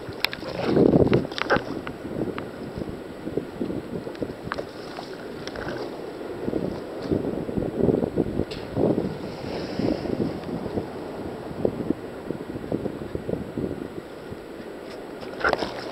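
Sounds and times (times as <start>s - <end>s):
surf water sloshing: 0.0s - 15.9s
wind buffeting microphone: 0.0s - 15.9s.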